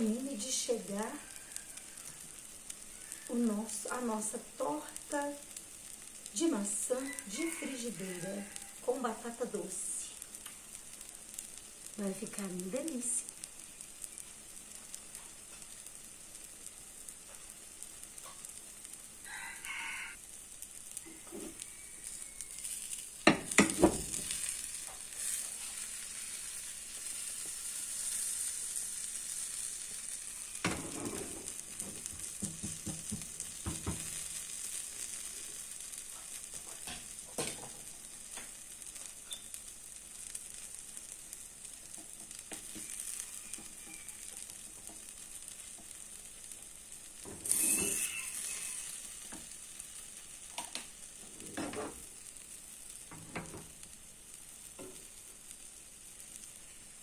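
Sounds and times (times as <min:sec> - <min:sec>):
batter sizzling in a frying pan: 0:00.0 - 0:57.0.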